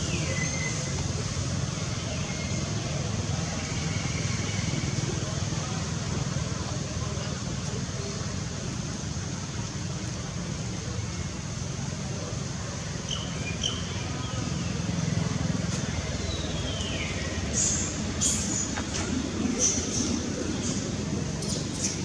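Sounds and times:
faint distant voices: 0.0 - 22.0.

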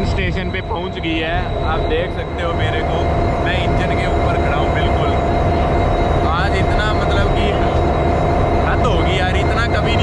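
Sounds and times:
people's voices: 0.0 - 7.9, 8.6 - 10.0
locomotive rumble and whine: 0.0 - 10.0.

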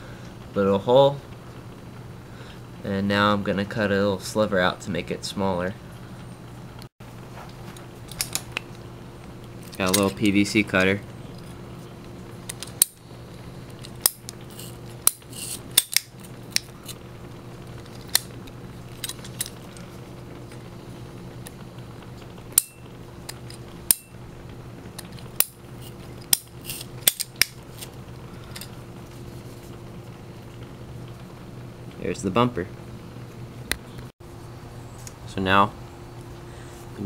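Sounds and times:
steady low hum: 0.0 - 37.0
pipe cutter clicking and snapping: 12.5 - 13.0, 13.9 - 14.4, 15.0 - 16.7, 26.2 - 27.6.

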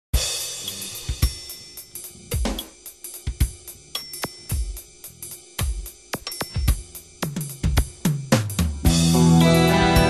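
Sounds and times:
hi-hat ticks: 0.2 - 8.9.

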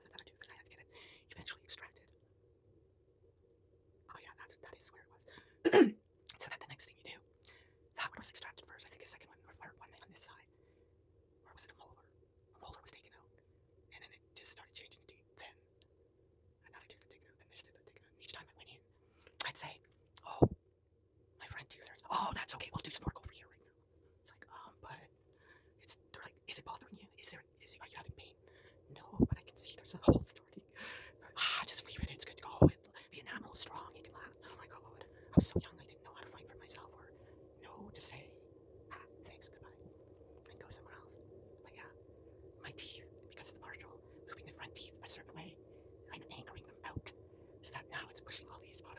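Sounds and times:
close whispering: 0.0 - 2.2, 4.1 - 10.5, 11.4 - 13.3, 13.9 - 15.6, 16.6 - 20.6, 21.4 - 48.9
faint steady hum: 0.0 - 48.9.

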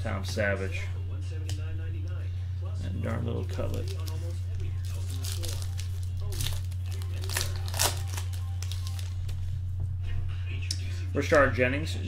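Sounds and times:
low hum: 0.0 - 12.0
wrapper tearing and crinkling: 3.6 - 9.2.

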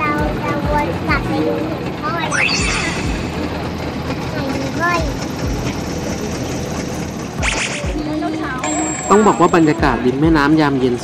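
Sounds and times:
boat engine running: 0.0 - 11.0.

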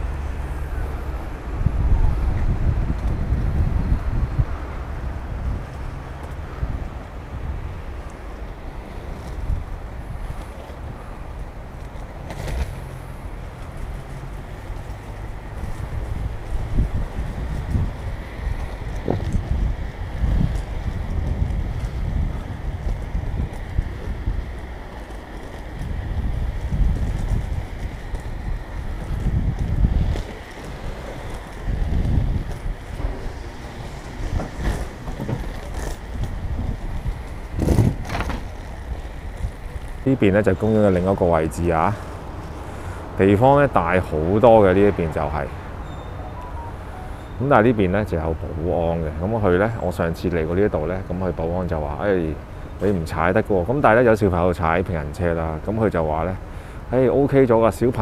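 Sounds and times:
skate wheels rolling on path: 0.0 - 58.0
wind buffeting microphone: 0.0 - 58.0.

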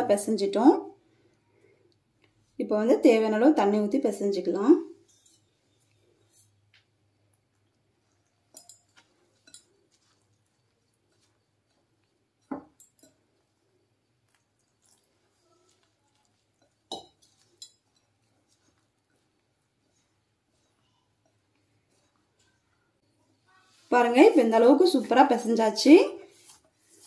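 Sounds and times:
glass bowl clinking and knocking: 8.5 - 9.7, 12.4 - 13.2, 16.6 - 18.1.

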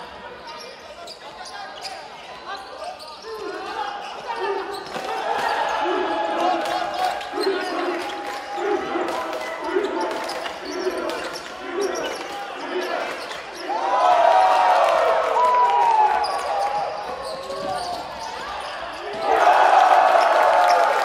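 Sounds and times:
players' voices: 0.0 - 21.0
sneaker squeaks: 0.3 - 5.7, 9.6 - 13.8, 16.2 - 19.2.

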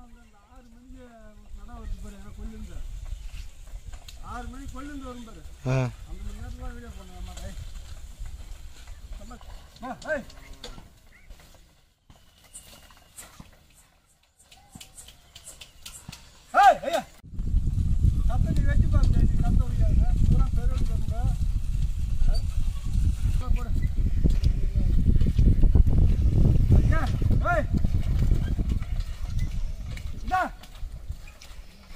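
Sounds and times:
cart wheel noise: 1.8 - 17.2, 17.8 - 31.9
hoofbeats: 2.1 - 17.2
man shouting calls: 5.6 - 6.1, 16.5 - 17.2, 30.2 - 30.6.

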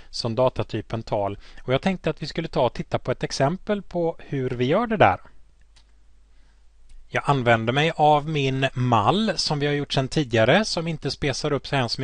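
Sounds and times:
man speaking: 0.1 - 5.4, 7.1 - 12.0
computer mouse clicks: 5.6 - 6.0.

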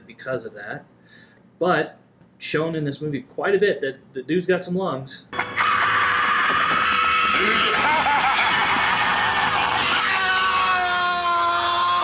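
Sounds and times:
young man screaming: 5.4 - 12.0.

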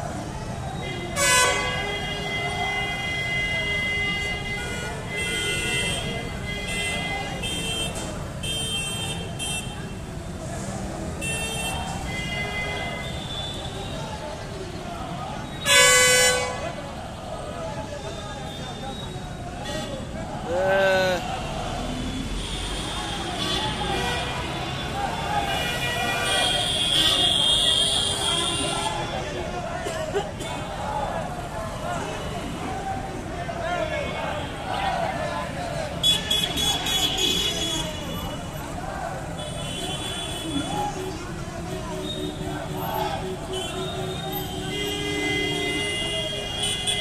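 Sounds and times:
street crowd din: 0.0 - 47.0
vehicle horns honking: 0.8 - 9.9, 11.2 - 13.9, 15.6 - 16.8, 22.4 - 29.2, 36.0 - 38.4, 39.4 - 41.2, 41.9 - 47.0.

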